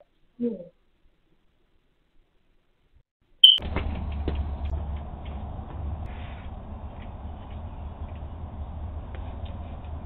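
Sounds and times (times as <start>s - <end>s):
short electronic beep: 3.4s - 3.6s
steady low hum: 3.6s - 10.0s.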